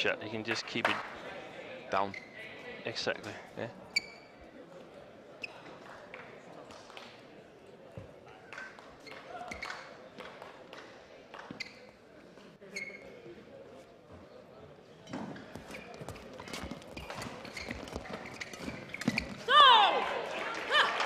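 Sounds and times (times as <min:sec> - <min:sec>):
court shoes squeaking: 0:01.9 - 0:04.6, 0:05.3 - 0:06.3, 0:07.9 - 0:19.8
player shouting: 0:19.5 - 0:21.0.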